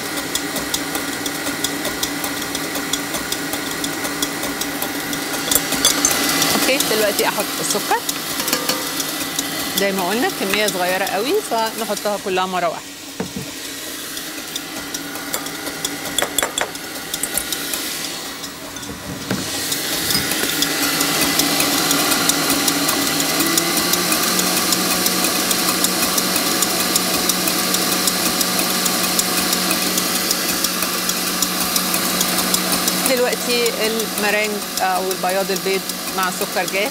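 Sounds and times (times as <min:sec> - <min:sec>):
stand mixer whisking in steel bowl: 0:00.0 - 0:36.9.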